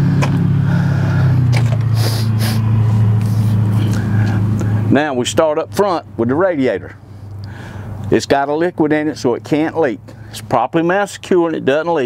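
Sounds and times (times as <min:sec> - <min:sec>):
vehicle engine idling: 0:00.0 - 0:12.0
brief hiss: 0:02.0 - 0:02.6.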